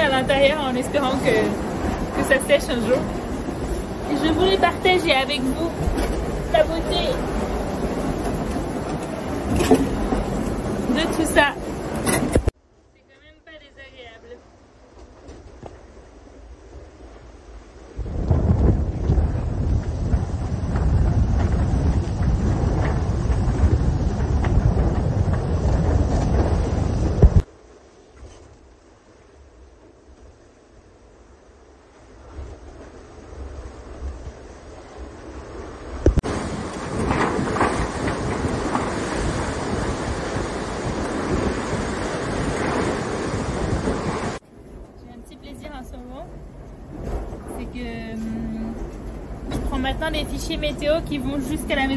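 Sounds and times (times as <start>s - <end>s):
wind buffeting on microphone: 0.0s - 12.6s, 13.2s - 51.9s
boat rumble: 0.0s - 51.9s
rushing sea: 0.0s - 51.9s.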